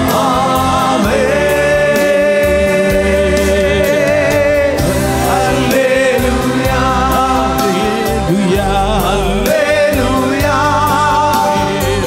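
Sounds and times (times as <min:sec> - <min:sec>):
electronic keyboard accompaniment: 0:00.0 - 0:12.0
men singing together: 0:00.0 - 0:12.0.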